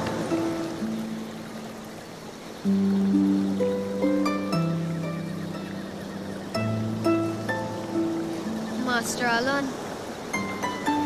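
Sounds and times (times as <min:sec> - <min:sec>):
higher plucked notes: 0:02.6 - 0:09.4.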